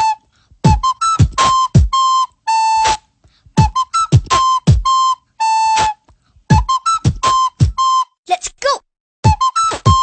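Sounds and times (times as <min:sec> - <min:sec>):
beatboxing kick and snare: 0:00.0 - 0:02.1, 0:02.8 - 0:05.0, 0:05.7 - 0:08.0, 0:09.2 - 0:10.0
recorder played through nose: 0:00.0 - 0:08.1, 0:09.2 - 0:10.0.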